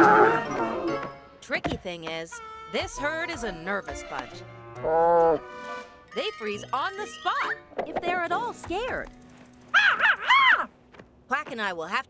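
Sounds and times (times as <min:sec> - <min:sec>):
high cartoon creature calls: 0:09.8 - 0:10.7.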